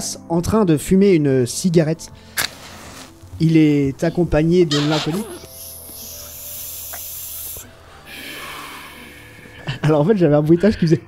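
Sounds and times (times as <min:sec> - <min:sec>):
person breathing through mouth: 0:05.4 - 0:09.6.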